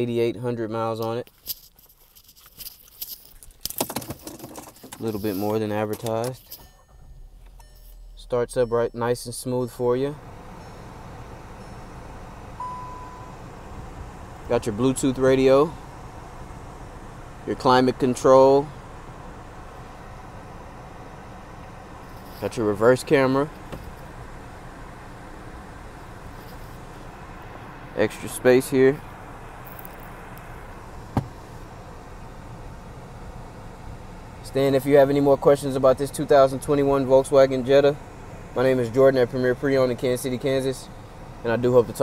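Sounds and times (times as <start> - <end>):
car engine idling: 2.7 - 42.0
car electronic beep: 6.5 - 13.8.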